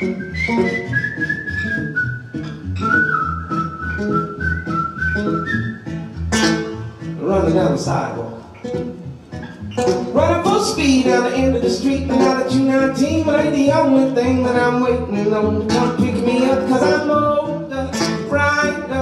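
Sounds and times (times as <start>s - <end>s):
person whistling melody: 0.0s - 6.0s
acoustic guitar strumming: 0.0s - 19.0s
person singing: 10.1s - 19.0s.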